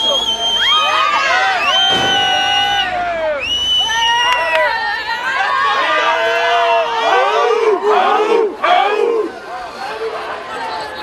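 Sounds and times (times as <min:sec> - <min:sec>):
soft crowd voices: 0:00.0 - 0:11.0
group shouting and whooping: 0:00.6 - 0:09.3.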